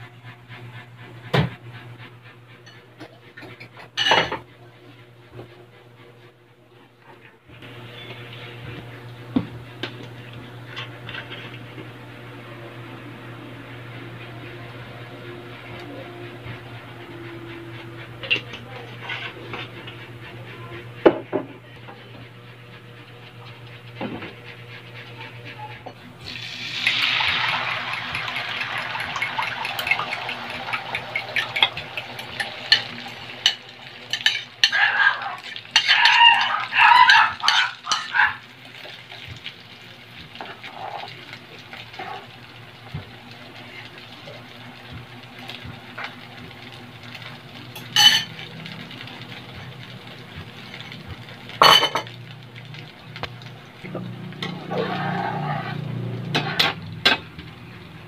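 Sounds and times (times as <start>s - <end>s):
egg mixture sizzling in hot oil: 26.2s - 57.7s.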